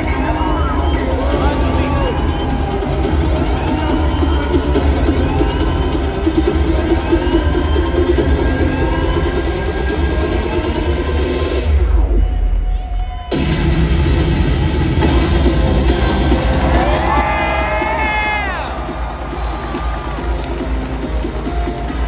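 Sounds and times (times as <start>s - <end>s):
electronic entrance music over pa: 0.0s - 22.0s.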